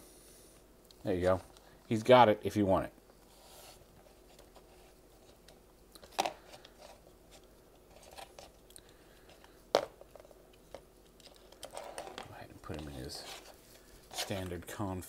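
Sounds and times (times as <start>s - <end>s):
handling rustle: 9.2s - 14.7s.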